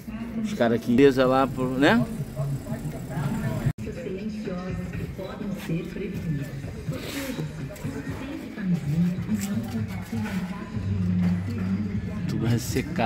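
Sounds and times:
steady low hum: 1.0s - 3.8s.

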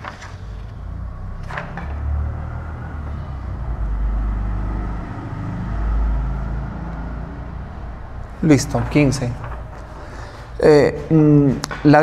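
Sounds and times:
low rumble: 0.8s - 11.2s.

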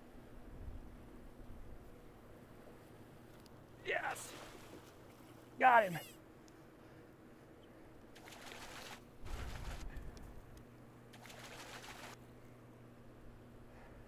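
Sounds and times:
faint low hum: 0.0s - 14.0s
fish splashing at water surface: 8.2s - 9.8s, 11.1s - 12.2s.

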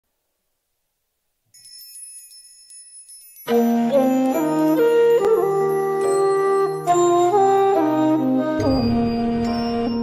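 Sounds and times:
high-pitched chiming music: 1.5s - 10.0s.

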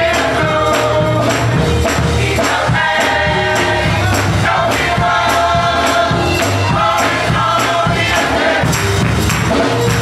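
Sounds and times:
bass accompaniment: 0.0s - 10.0s
gospel choir singing: 0.0s - 10.0s
hand clapping: 8.7s - 10.0s.

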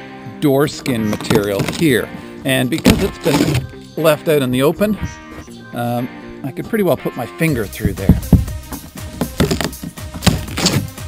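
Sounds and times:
background music: 0.0s - 11.0s
plywood cracking: 1.0s - 5.2s, 7.8s - 11.0s.

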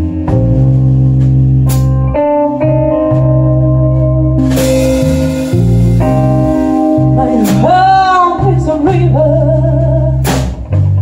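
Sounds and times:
blues-rock band playing: 0.0s - 11.0s
cymbal hit: 4.4s - 7.1s.

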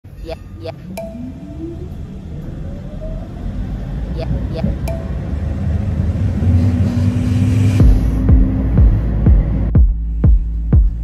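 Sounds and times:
vehicle rumble from inside: 0.1s - 11.0s
motor whine rising in pitch: 0.4s - 9.7s.

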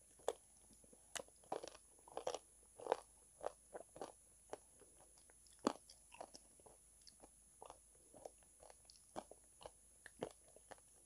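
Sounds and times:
crunching and chewing: 0.0s - 11.0s.

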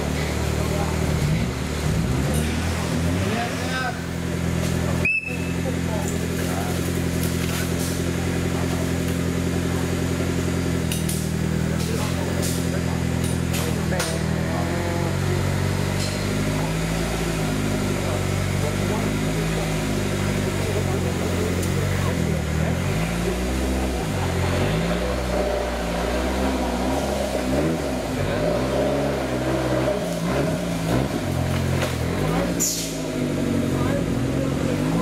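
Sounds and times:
car engine idling: 0.0s - 35.0s
people talking: 0.0s - 35.0s.

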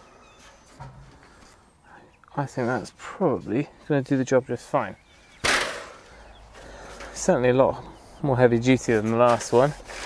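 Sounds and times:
soil screen rattling: 8.7s - 10.0s.

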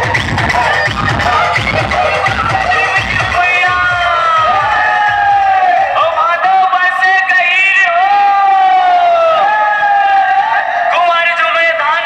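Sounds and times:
loud music over loudspeakers: 0.0s - 12.0s.

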